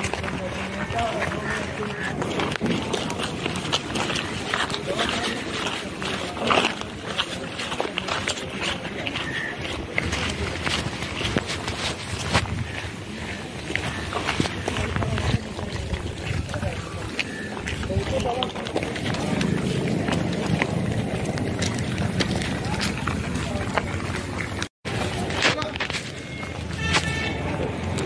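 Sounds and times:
clothing and bag rustle: 0.0s - 26.9s
footsteps on a path: 0.0s - 28.0s
people talking: 0.0s - 28.0s.

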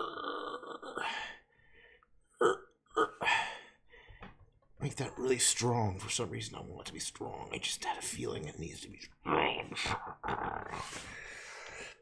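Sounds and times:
man's throaty vocal sound: 0.0s - 1.4s, 2.4s - 3.6s, 9.3s - 11.1s.

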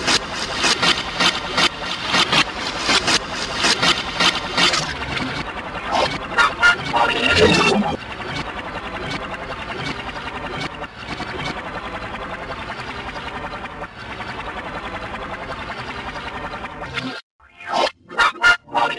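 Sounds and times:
processed remix audio with flutter: 0.0s - 18.9s.

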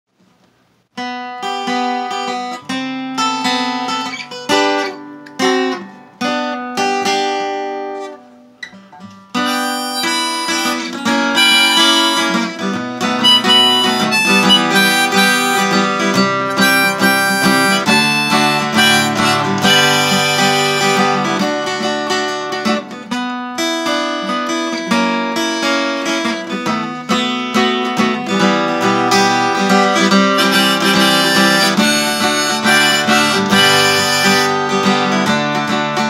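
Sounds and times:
fingerpicked acoustic guitar: 0.8s - 36.0s
harmonica: 9.4s - 21.8s, 29.0s - 35.3s.

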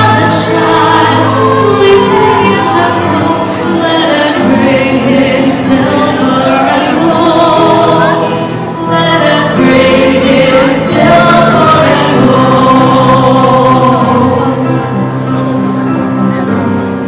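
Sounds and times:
woman singing solo: 0.0s - 15.0s
choir singing: 0.0s - 15.8s.

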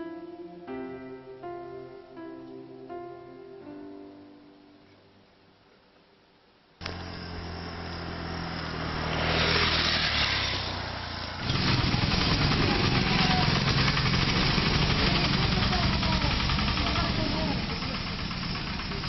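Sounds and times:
steady engine rumble: 6.8s - 19.0s
vehicle engines running: 6.8s - 19.0s
vehicle passing: 6.8s - 19.0s.

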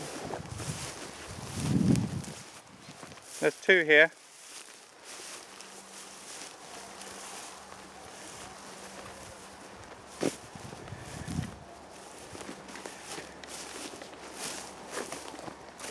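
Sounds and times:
footsteps through grass: 0.0s - 15.9s
stems rustling: 0.0s - 15.9s.

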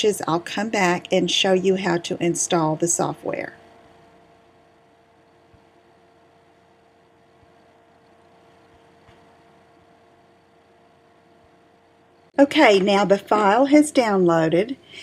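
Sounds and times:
faint steady hum: 0.0s - 15.0s.

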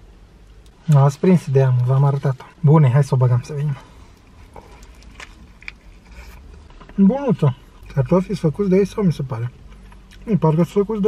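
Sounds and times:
quiet chewing: 4.0s - 7.0s, 9.4s - 10.3s.

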